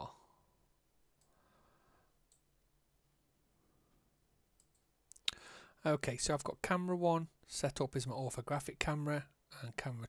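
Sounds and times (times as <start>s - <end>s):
computer mouse clicks: 2.2s - 2.5s, 4.6s - 5.4s.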